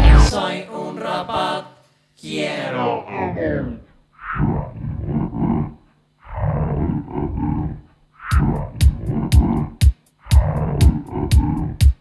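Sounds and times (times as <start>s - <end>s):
rough roar-like noise bursts: 2.7s - 11.8s.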